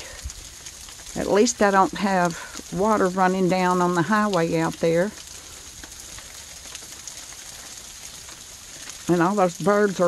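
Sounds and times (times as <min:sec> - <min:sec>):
outdoor background hiss: 0:00.0 - 0:10.0
faint ticks: 0:05.2 - 0:09.0.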